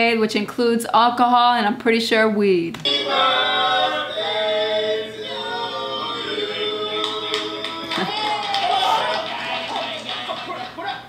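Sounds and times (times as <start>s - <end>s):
voices singing together: 2.8s - 11.0s.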